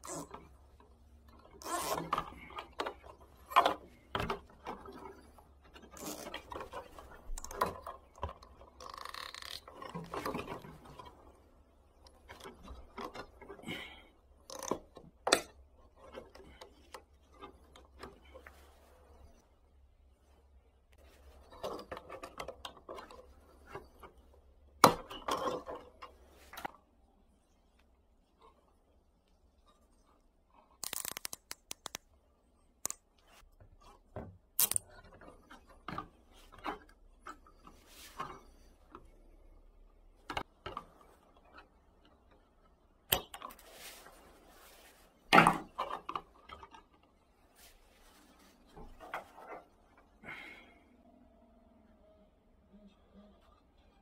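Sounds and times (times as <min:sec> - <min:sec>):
plastic handling noise: 0:00.1 - 0:13.7
cable tie ratchet clicks: 0:30.8 - 0:32.0.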